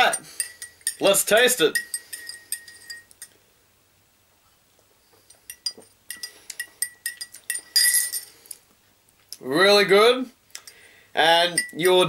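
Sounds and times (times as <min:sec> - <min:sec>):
spoon clinking against cup: 0:00.0 - 0:03.3, 0:05.3 - 0:08.3, 0:11.5 - 0:12.0.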